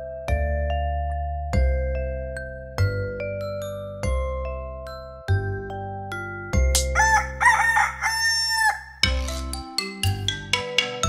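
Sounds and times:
gentle xylophone tune with bass: 0.0 - 11.0
rooster crowing: 7.0 - 9.0.

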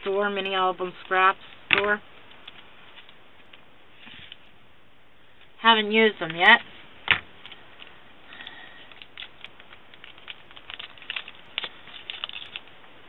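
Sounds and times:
plastic wrapper crinkling: 7.4 - 12.8.

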